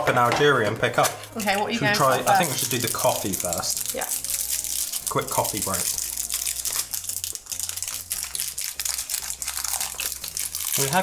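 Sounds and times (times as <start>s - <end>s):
candy wrappers crinkling: 0.9s - 11.0s.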